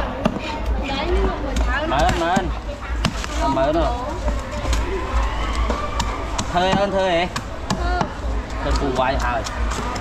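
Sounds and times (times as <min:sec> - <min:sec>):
market din: 0:00.0 - 0:10.0.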